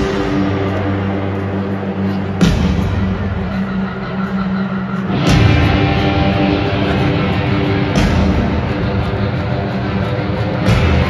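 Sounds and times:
crowd noise: 0.0 - 11.0
electric guitar: 0.0 - 11.0.

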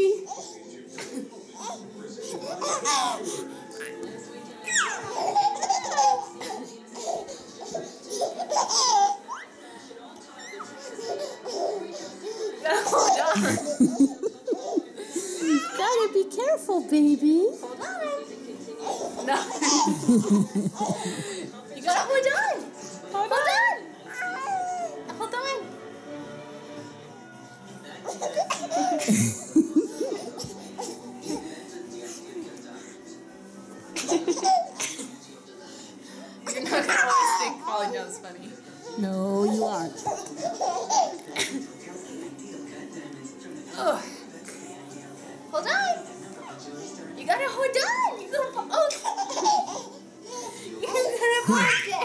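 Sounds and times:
baby laughing: 0.3 - 4.0, 4.6 - 9.5, 10.4 - 16.0, 18.8 - 21.2, 28.1 - 31.4, 34.0 - 35.0, 38.8 - 41.6, 48.0 - 52.0
baby squealing: 4.6 - 6.3.

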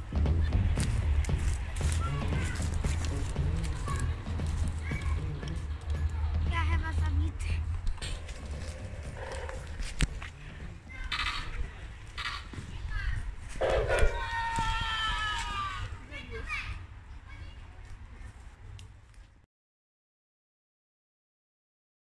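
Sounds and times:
steady low rumble: 0.0 - 14.4
children calling out in play: 1.9 - 6.1, 10.8 - 11.6, 13.9 - 17.7.

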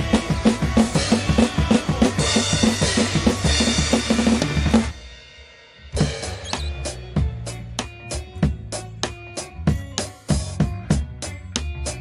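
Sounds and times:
drum kit played hard: 0.0 - 12.0
rock backing track: 0.0 - 12.0.

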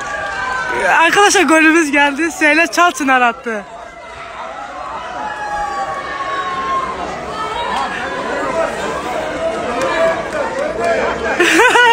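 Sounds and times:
group shouting and cheering: 0.0 - 11.9
long drawn-out shout: 3.6 - 11.9.

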